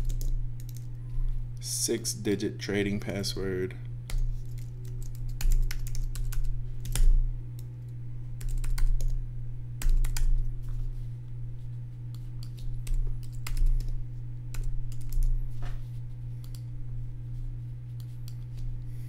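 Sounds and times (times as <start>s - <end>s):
keyboard typing: 0.0s - 0.9s, 4.1s - 7.7s, 8.4s - 9.2s, 9.8s - 10.4s, 12.1s - 13.9s, 14.5s - 15.3s
steady low hum: 0.0s - 19.0s.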